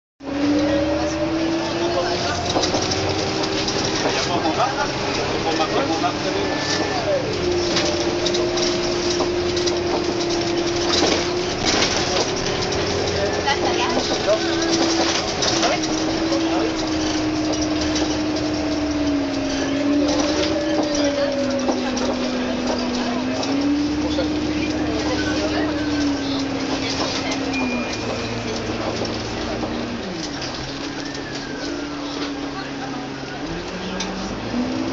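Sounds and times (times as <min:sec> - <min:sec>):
bus body rattling: 0:00.2 - 0:34.9
bus drivetrain whine: 0:00.2 - 0:34.9
road rumble: 0:00.2 - 0:34.9
street and cabin noise: 0:00.2 - 0:34.9
brief high tone: 0:27.5 - 0:28.6.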